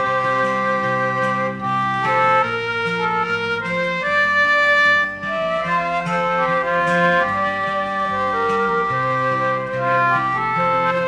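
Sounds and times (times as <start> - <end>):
instrumental folk melody: 0.0 - 11.0.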